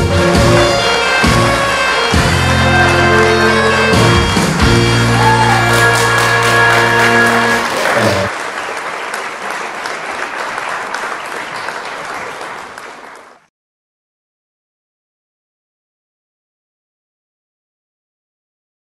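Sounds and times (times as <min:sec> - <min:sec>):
band backing track with bass: 0:00.0 - 0:08.3
audience applause: 0:00.9 - 0:13.5.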